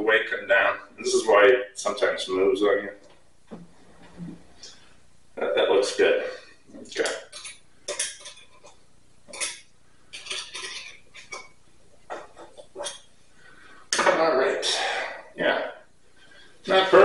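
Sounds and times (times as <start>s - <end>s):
metal spit clinking and scraping: 7.3s - 11.5s.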